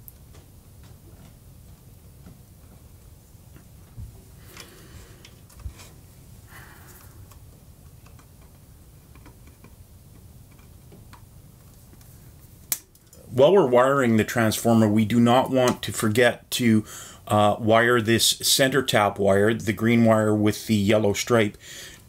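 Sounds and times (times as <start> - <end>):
wires and tools handled: 3.5 - 6.1, 6.9 - 13.3.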